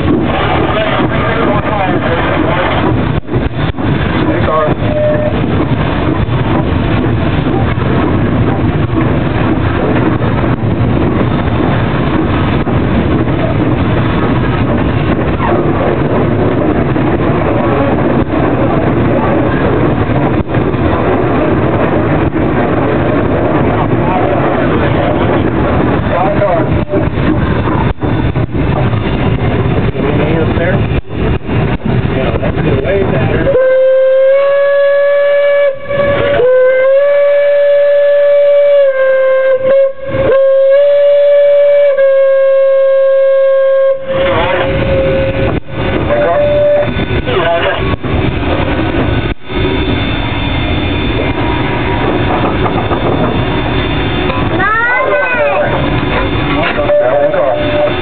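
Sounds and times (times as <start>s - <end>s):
steam locomotive clatter: 0.0s - 58.0s
steam whistle blast: 33.5s - 45.5s, 46.1s - 47.2s.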